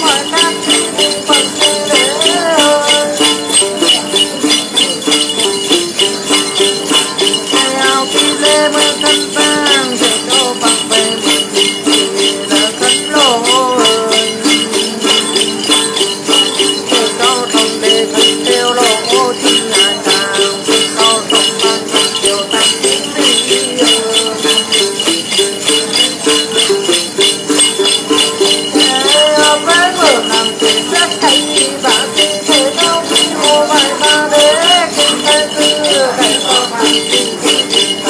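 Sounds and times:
man singing: 0.0s - 5.7s, 6.9s - 38.0s
jingle bells shaken: 0.0s - 38.0s
lute playing: 0.0s - 38.0s.

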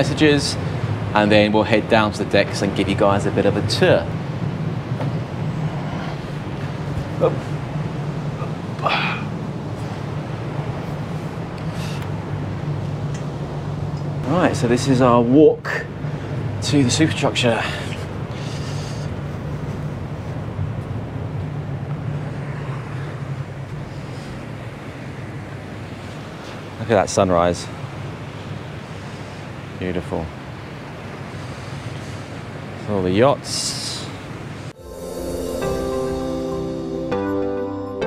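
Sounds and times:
ship engine drone: 0.0s - 26.4s, 34.0s - 38.0s
ship machinery droning: 34.2s - 38.0s.

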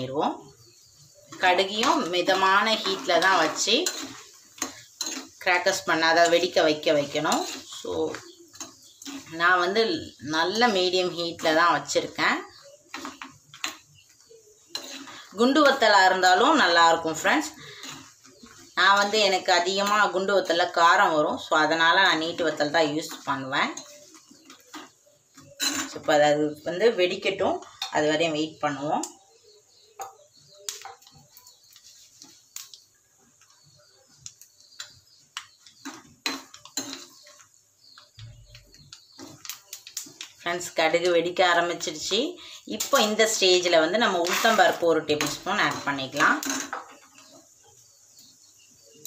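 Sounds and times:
woman talking: 0.0s - 0.5s, 1.4s - 4.0s, 5.4s - 8.3s, 9.3s - 12.6s, 15.4s - 17.7s, 18.8s - 23.8s, 40.5s - 46.5s
chillies frying in oil: 0.0s - 49.0s.

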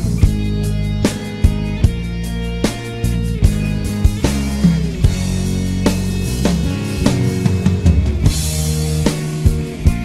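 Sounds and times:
instrumental pop backing track: 0.0s - 10.0s.

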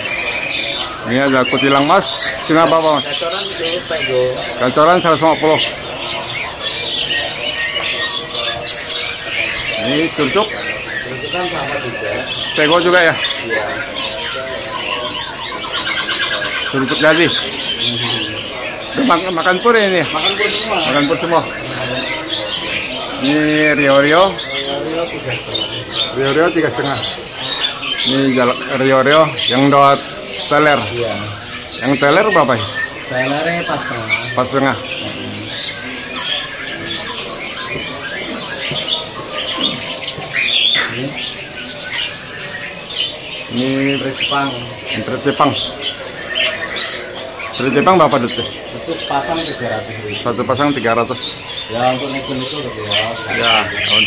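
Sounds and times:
songbirds chirping and singing: 0.0s - 54.0s.

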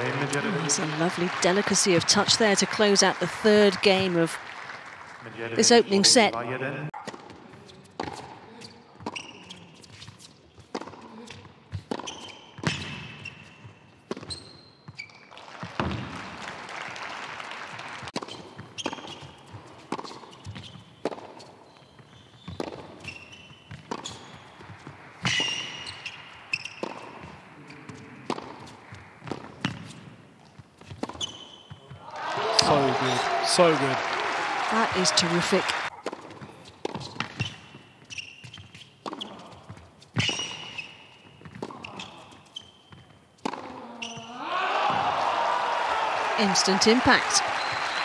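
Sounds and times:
applause: 0.0s - 6.4s, 15.3s - 18.2s, 32.1s - 35.9s, 45.0s - 48.0s
sneaker squeaks: 7.0s - 15.3s, 18.2s - 32.0s, 35.9s - 44.4s
ball bounces: 11.7s - 15.0s, 15.6s - 16.2s, 22.0s - 32.0s, 35.9s - 40.8s, 42.9s - 44.3s.

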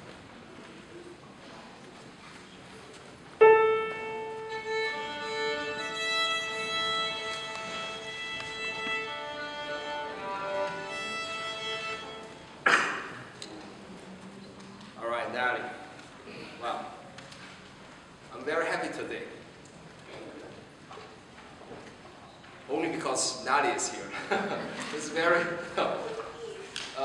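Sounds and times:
violin strings bowed: 3.4s - 12.4s
short sharp knock: 12.6s - 13.2s.

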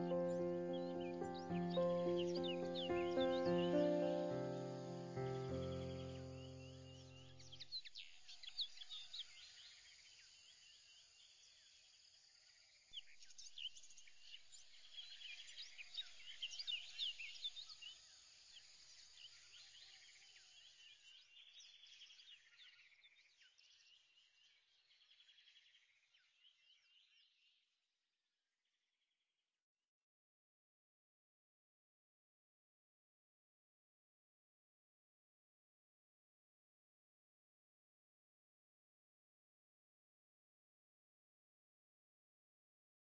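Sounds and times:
birds chirping and trilling: 0.0s - 10.0s.

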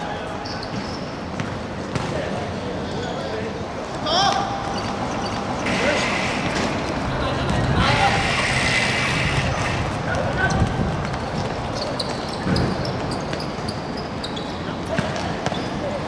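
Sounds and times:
football kicked and bouncing: 0.7s - 2.3s.

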